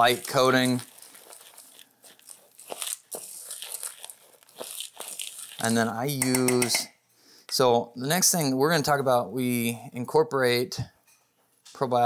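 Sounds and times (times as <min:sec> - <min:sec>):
grain stirred in a bowl: 0:00.0 - 0:06.8.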